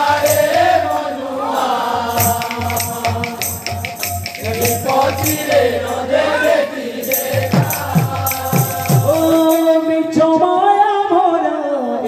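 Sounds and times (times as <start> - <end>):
group chanting: 0.0 - 9.6
metallic percussion: 0.0 - 10.0
barrel drums beating: 2.2 - 5.8, 7.2 - 9.7.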